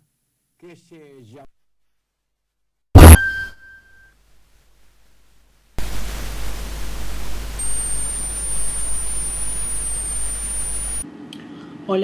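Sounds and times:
loud static hiss: 0:03.0 - 0:03.2, 0:04.3 - 0:11.0
low hum: 0:05.8 - 0:11.0
thin wavering high whine: 0:05.8 - 0:11.0.

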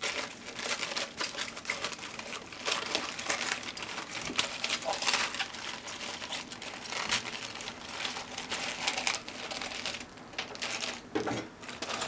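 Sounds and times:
cabbage leaves crunching: 0:00.0 - 0:12.0.

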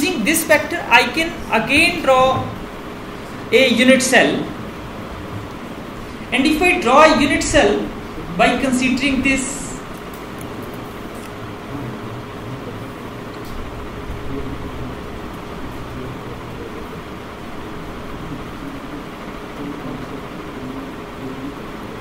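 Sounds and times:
fan hum and hiss: 0:00.0 - 0:22.0.

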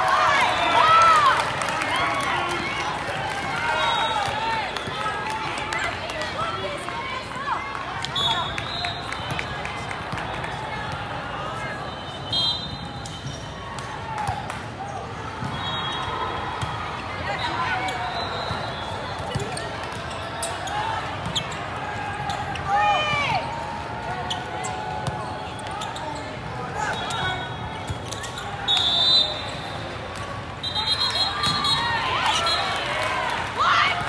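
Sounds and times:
referee's whistle: 0:03.7 - 0:04.9, 0:08.1 - 0:09.5, 0:11.6 - 0:13.6, 0:15.5 - 0:16.4, 0:17.3 - 0:19.5, 0:26.8 - 0:29.9, 0:30.6 - 0:32.8.

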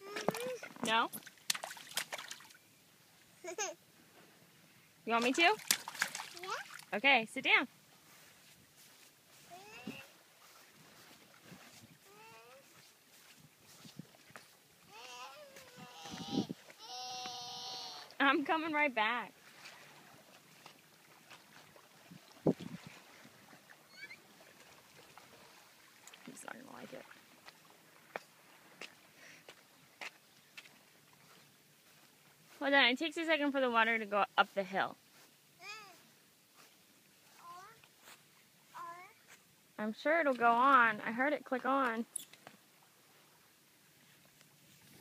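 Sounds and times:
toddler crying and wailing: 0:00.0 - 0:00.7, 0:09.4 - 0:10.1, 0:12.0 - 0:12.7, 0:14.9 - 0:18.2, 0:35.6 - 0:36.0.

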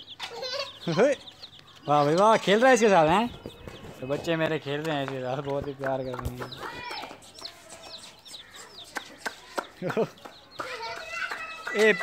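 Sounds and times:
baby chicks peeping: 0:00.0 - 0:12.0.

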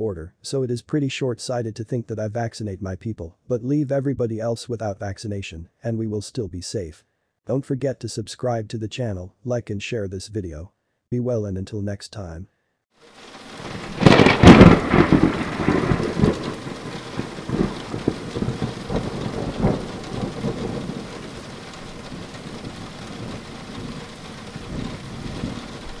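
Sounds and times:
steady rain: 0:13.0 - 0:26.0
thunder cracking and rumbling: 0:13.2 - 0:26.0.

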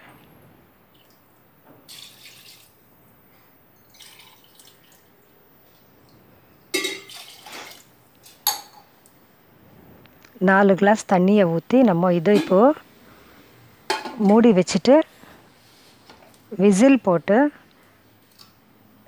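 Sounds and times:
water pouring into metal pot: 0:01.9 - 0:02.7, 0:03.8 - 0:05.0, 0:06.8 - 0:07.8.

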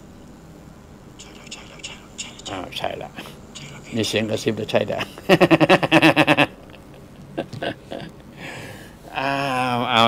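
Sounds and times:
man giggling: 0:04.9 - 0:08.2.

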